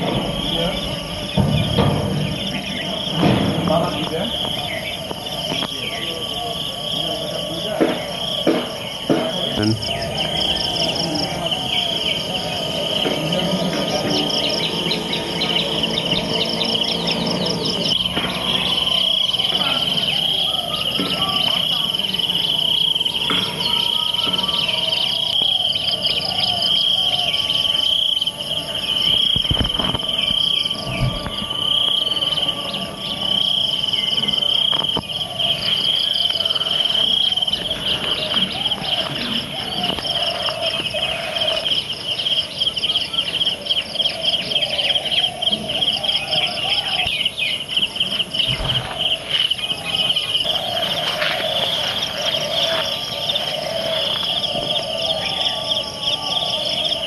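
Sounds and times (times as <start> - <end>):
birds calling: 0.0 - 57.0
high-pitched insect chorus trilling: 0.0 - 57.0.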